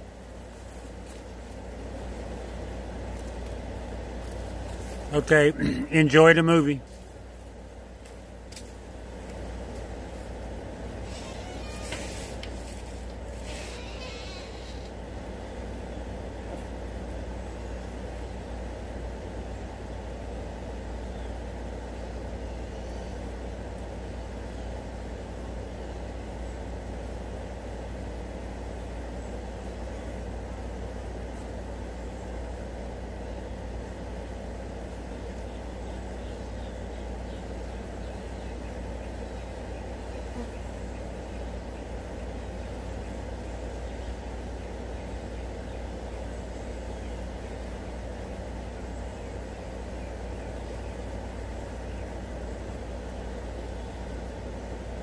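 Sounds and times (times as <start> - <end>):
flies buzzing: 0.0 - 55.0.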